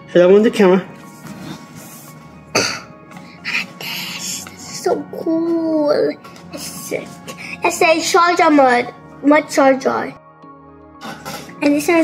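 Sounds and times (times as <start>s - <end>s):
person coughing: 2.5s - 3.0s, 11.0s - 11.6s.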